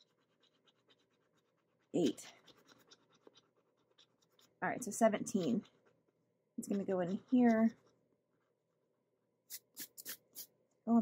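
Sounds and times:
scratching scratch-off coating: 0:00.0 - 0:10.6.

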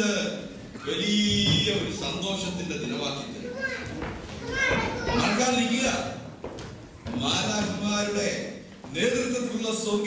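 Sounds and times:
man talking into microphone: 0:00.0 - 0:03.5, 0:05.1 - 0:06.3, 0:07.1 - 0:10.0.

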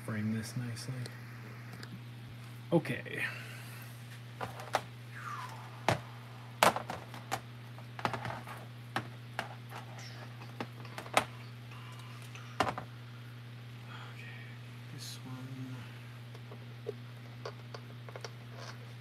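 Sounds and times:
steady low hum: 0:00.0 - 0:19.0.

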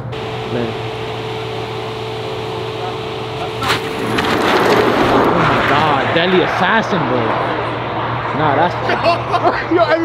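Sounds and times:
car accelerating hard: 0:00.0 - 0:09.4
people's voices: 0:00.0 - 0:10.0.

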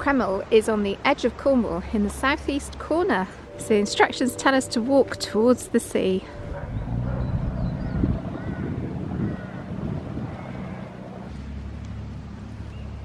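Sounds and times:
boat engine humming: 0:00.0 - 0:13.0
wind on microphone: 0:03.4 - 0:11.4.

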